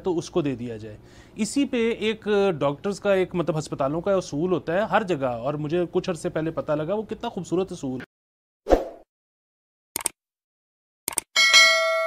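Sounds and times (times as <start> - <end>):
notification bell ding: 11.4 - 12.0.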